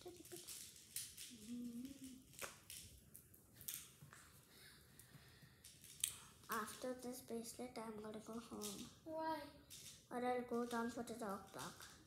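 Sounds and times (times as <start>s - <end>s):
beads clicking: 0.0s - 4.1s, 5.4s - 7.1s
child's voice: 1.3s - 2.2s, 6.5s - 11.8s
person humming: 1.3s - 2.3s.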